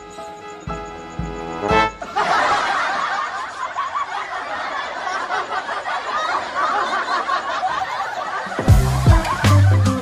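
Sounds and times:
people laughing: 1.9s - 10.0s.

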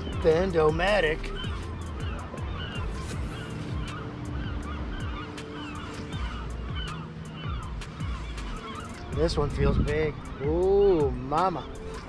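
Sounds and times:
flock of birds honking and squawking: 0.0s - 12.0s
water rumbling: 0.0s - 12.0s
wind: 0.0s - 12.0s.

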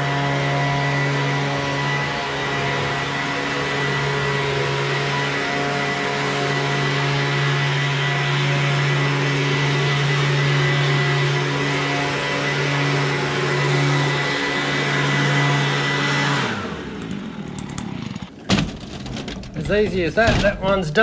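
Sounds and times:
leaf blower running: 0.0s - 18.4s
engine winding down: 0.0s - 21.0s.

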